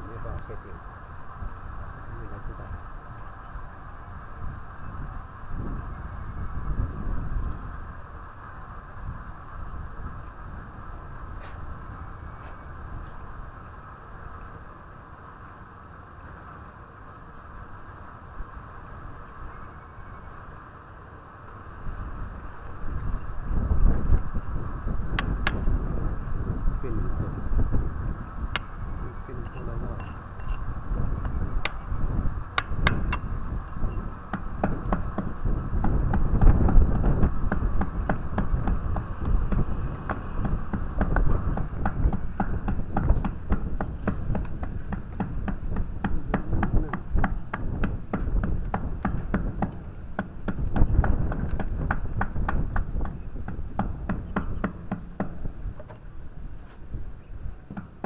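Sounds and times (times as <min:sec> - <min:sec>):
wind rumble on microphone: 0:00.0 - 0:58.0
hammer striking chisel on masonry: 0:25.1 - 0:25.8, 0:28.6 - 0:32.0, 0:32.6 - 0:56.0, 0:57.7 - 0:58.0.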